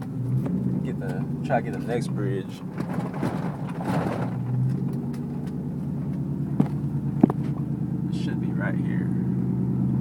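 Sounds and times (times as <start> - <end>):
truck engine hum and tyre noise: 0.0 - 10.0.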